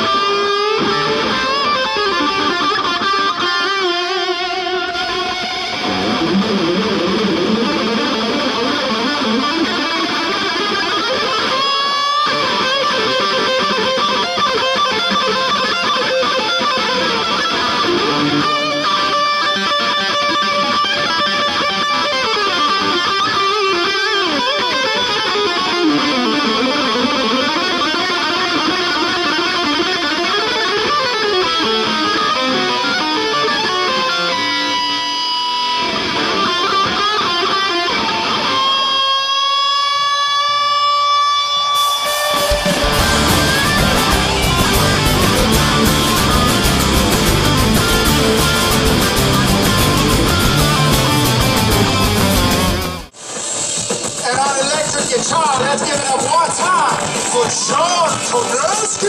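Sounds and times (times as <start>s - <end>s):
distorted electric guitar solo: 0.0s - 59.0s
live rock band: 0.0s - 59.0s.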